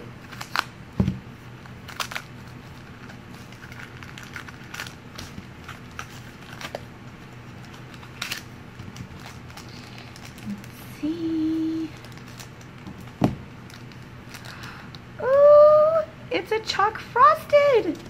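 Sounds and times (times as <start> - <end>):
plastic packaging crackling: 0.2 - 15.0.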